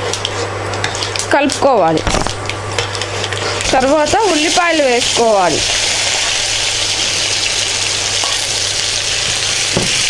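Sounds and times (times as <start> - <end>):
onions sizzling in oil: 2.8 - 10.0.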